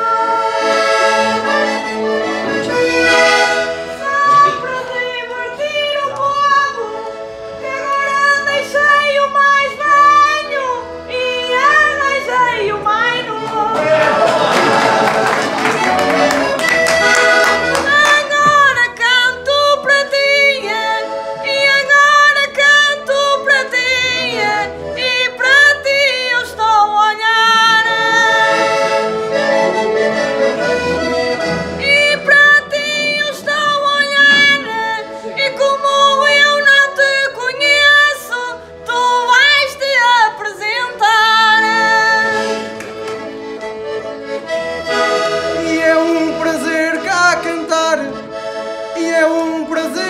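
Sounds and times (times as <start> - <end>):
button accordion playing chords: 0.0 - 50.0
woman singing: 4.0 - 13.9, 17.7 - 28.5, 31.8 - 42.4.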